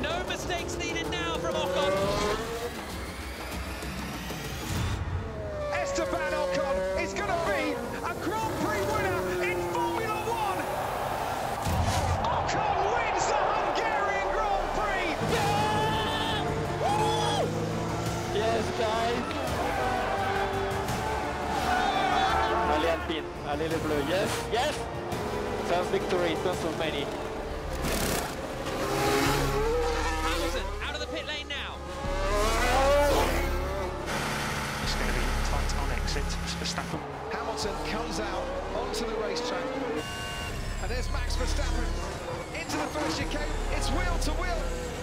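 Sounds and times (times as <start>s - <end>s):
racing car engine accelerating: 0.0s - 12.0s, 14.1s - 45.0s
background music: 0.0s - 45.0s
people shouting and cheering: 8.4s - 17.7s, 18.4s - 23.4s.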